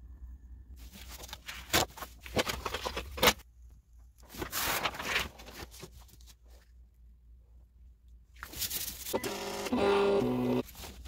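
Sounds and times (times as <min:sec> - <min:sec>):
cardstock rustling and sliding: 0:04.2 - 0:06.4.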